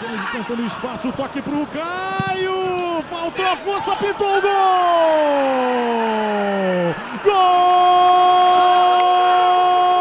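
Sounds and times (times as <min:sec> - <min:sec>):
commentator's long goal shout: 0:03.4 - 0:10.0.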